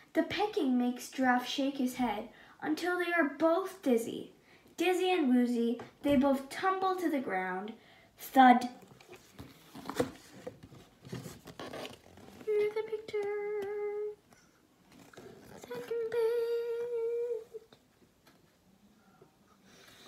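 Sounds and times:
girl humming: 0:15.5 - 0:17.8.

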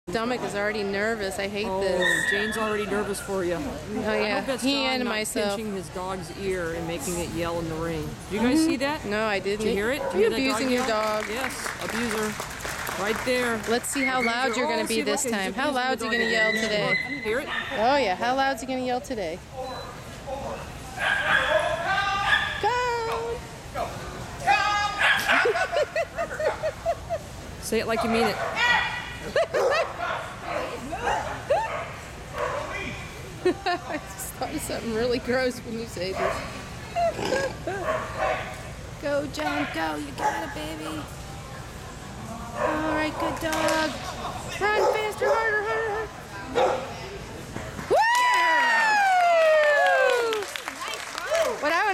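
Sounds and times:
small dog yelping: 0:16.1 - 0:17.8
woo cheer: 0:47.9 - 0:50.6.

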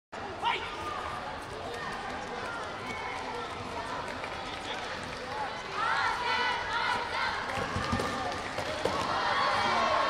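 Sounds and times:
coaches and spectators shouting: 0:00.2 - 0:04.0, 0:05.2 - 0:10.0
many distant voices: 0:00.2 - 0:10.0.

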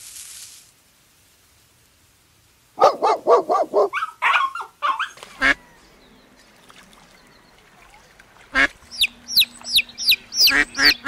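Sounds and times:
dog barking: 0:02.8 - 0:05.5
high-pitched dog yelps: 0:02.8 - 0:05.5.

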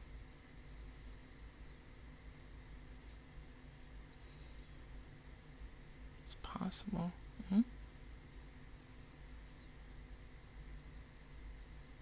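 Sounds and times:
person murmuring and whispering: 0:07.4 - 0:07.7.

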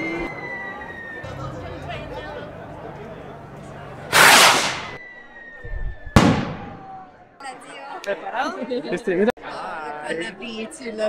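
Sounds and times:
firework bang: 0:04.1 - 0:05.0, 0:06.2 - 0:07.0
firework rocket whoosh: 0:04.1 - 0:05.0.

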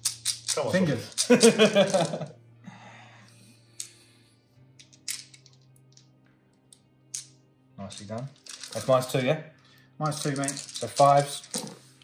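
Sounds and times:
dice clicking: 0:00.0 - 0:02.2, 0:04.8 - 0:06.1, 0:06.7 - 0:09.1, 0:10.2 - 0:11.8.

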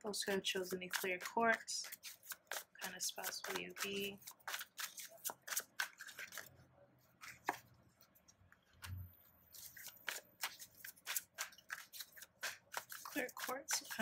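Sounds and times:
cards shuffling: 0:00.6 - 0:06.5, 0:07.2 - 0:14.0.

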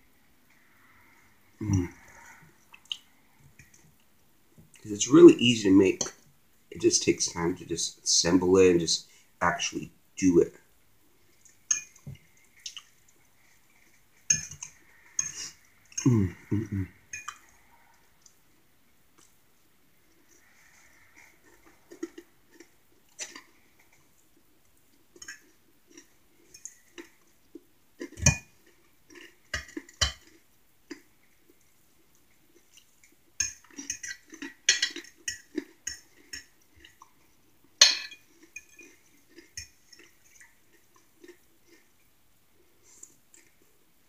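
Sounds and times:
close chewing: 0:20.0 - 0:37.5, 0:38.3 - 0:43.8
metal fork clinking on plate: 0:37.8 - 0:38.8.

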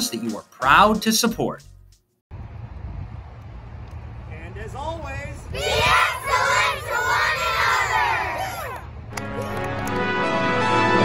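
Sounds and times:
children shouting a cheer: 0:05.5 - 0:09.6.

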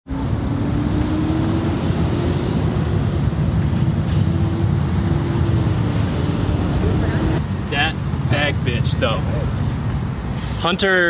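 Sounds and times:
engine hum: 0:00.1 - 0:10.7
vehicle rumble: 0:00.1 - 0:11.0.

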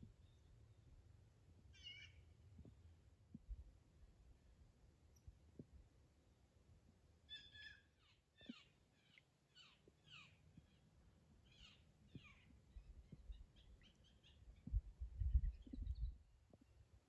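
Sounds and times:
bird calling: 0:01.8 - 0:02.2.

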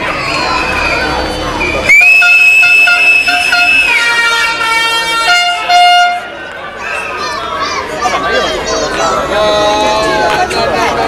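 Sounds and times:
long high horn blast: 0:02.0 - 0:06.4.

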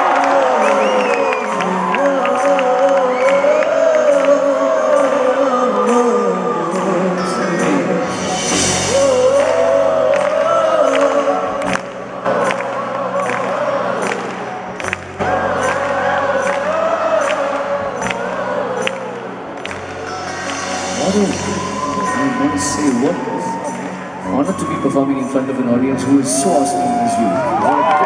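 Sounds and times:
crowd noise: 0:00.0 - 0:28.0
live band music: 0:00.0 - 0:28.0
percussion beat: 0:01.5 - 0:12.6, 0:13.2 - 0:24.9.

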